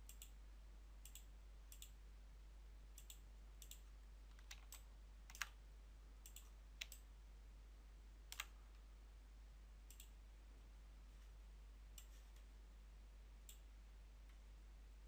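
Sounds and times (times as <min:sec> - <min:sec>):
computer mouse clicks: 0:00.0 - 0:00.4, 0:01.0 - 0:02.0, 0:03.0 - 0:05.6, 0:06.2 - 0:07.1, 0:08.3 - 0:08.6, 0:09.9 - 0:10.2, 0:12.0 - 0:12.5.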